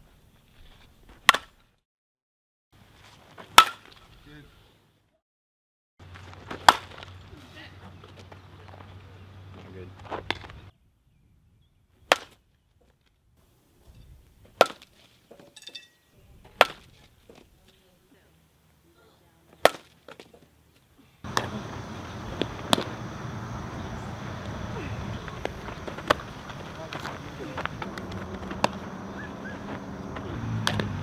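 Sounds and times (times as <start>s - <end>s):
outdoor background noise: 0.0s - 1.8s, 2.8s - 5.2s, 6.0s - 31.0s
bat hitting softball: 1.2s - 1.6s, 3.5s - 4.0s, 6.5s - 7.1s, 12.1s - 12.4s, 14.6s - 15.0s, 16.5s - 17.0s, 19.6s - 20.3s, 21.2s - 23.2s, 23.8s - 31.0s.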